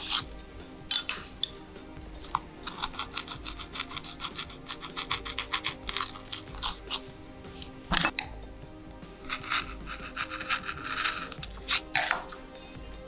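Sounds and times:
carving tool scraping wood: 0:00.0 - 0:08.2, 0:09.1 - 0:12.6
background music: 0:00.0 - 0:13.0.

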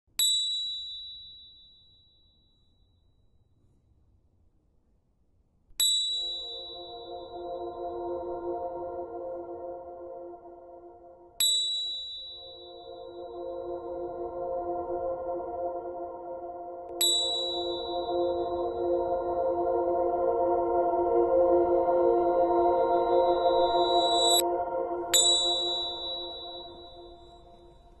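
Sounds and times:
high bell-like chime: 0:05.8 - 0:08.3, 0:11.4 - 0:13.5, 0:17.0 - 0:18.8, 0:23.0 - 0:24.5, 0:25.1 - 0:28.0
sustained low chord: 0:06.1 - 0:28.0.

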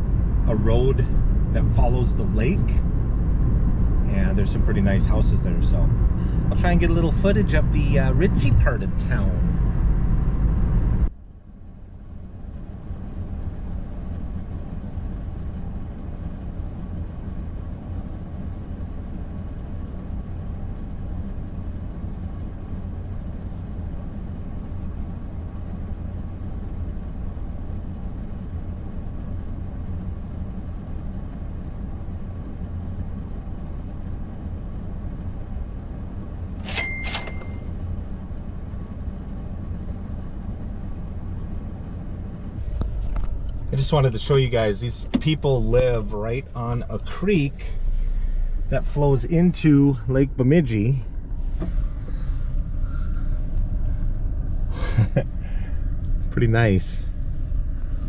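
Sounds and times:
car engine idling: 0:37.8 - 0:58.0.

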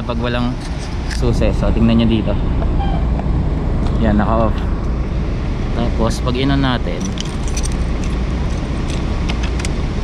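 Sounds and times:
low rumble: 0:00.0 - 0:10.0
keys jingling: 0:07.0 - 0:09.7.

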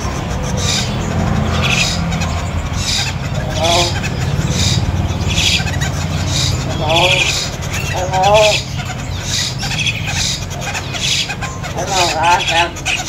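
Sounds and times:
cage birds chirping: 0:00.0 - 0:13.0
steady low rumble: 0:00.0 - 0:13.0
wavering bird call: 0:00.0 - 0:13.0.

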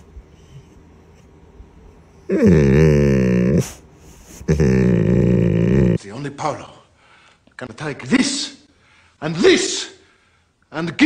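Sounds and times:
dog grumbling: 0:02.2 - 0:06.0.

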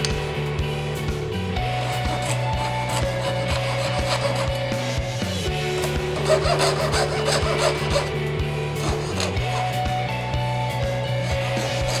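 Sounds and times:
background music: 0:00.0 - 0:12.0
saw rasping back and forth: 0:01.6 - 0:12.0.

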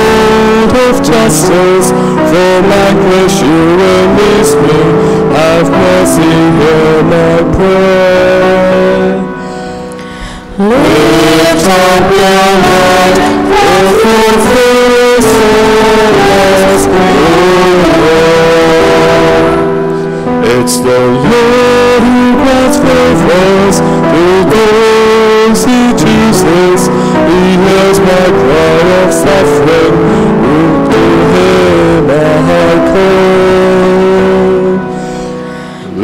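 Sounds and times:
guitar accompaniment: 0:00.0 - 0:36.0
person singing: 0:00.0 - 0:36.0.

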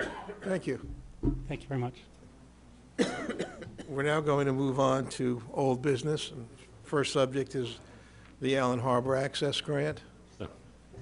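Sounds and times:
man coughing: 0:00.0 - 0:00.6, 0:03.0 - 0:04.0.

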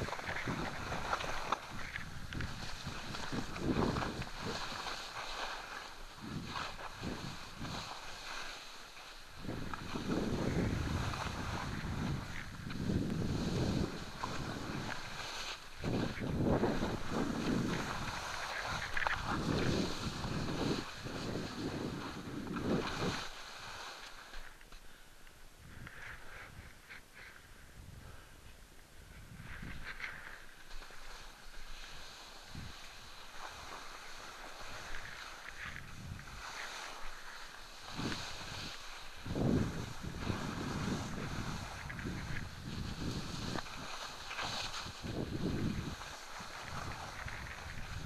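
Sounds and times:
wind rushing over microphone: 0:00.0 - 0:05.5, 0:06.1 - 0:08.2, 0:09.3 - 0:23.4, 0:32.4 - 0:32.8, 0:34.8 - 0:36.6, 0:37.8 - 0:48.0
skis scraping over snow: 0:00.0 - 0:25.0, 0:28.8 - 0:48.0.

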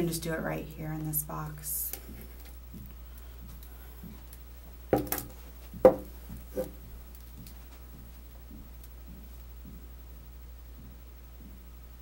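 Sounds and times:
steady low hum: 0:00.0 - 0:12.0
knocks on a table: 0:05.0 - 0:06.7.

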